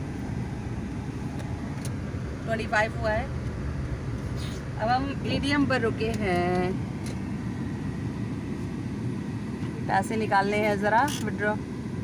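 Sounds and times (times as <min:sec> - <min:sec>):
car engine low rumble: 0:00.0 - 0:12.0.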